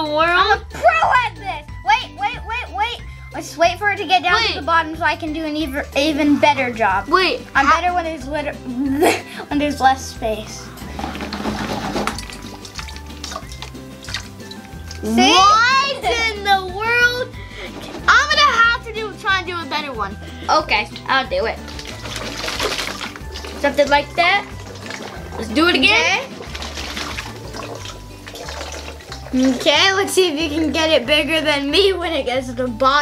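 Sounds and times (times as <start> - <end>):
background music with bass line: 0.0 - 33.0
water trickling and splashing: 3.0 - 8.7, 9.3 - 18.9, 20.0 - 31.6
water gurgling through bottles: 10.9 - 15.6, 21.5 - 30.8.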